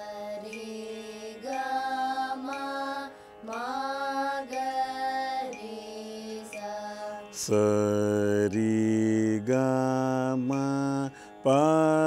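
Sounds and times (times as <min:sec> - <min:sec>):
person singing long held notes: 0:00.0 - 0:12.0.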